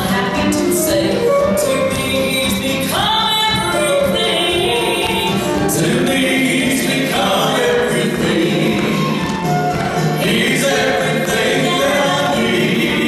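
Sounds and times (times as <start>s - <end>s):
vocal trio singing in harmony: 0.0s - 13.0s.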